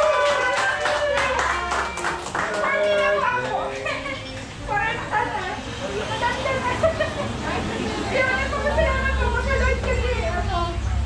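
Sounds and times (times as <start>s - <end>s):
hand clapping: 0.2s - 3.6s.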